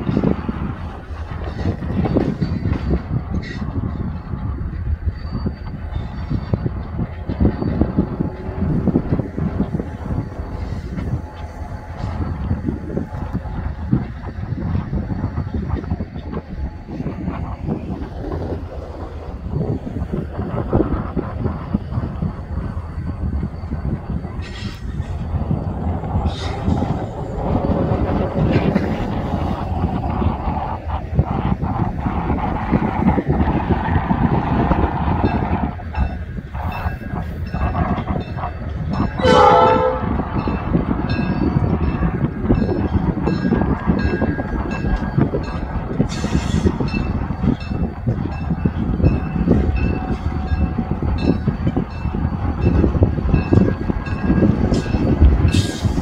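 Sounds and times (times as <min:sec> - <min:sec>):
diesel locomotive engine running: 0:00.0 - 0:56.0
train horn: 0:39.2 - 0:40.4.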